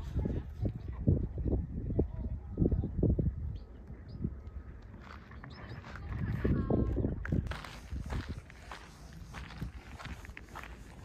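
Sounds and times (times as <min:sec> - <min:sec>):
footsteps on gravelly trail: 0:04.8 - 0:11.0.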